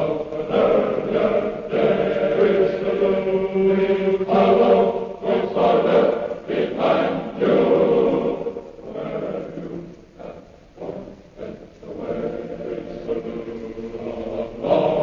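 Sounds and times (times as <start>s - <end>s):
choir singing held chords: 0.0s - 15.0s.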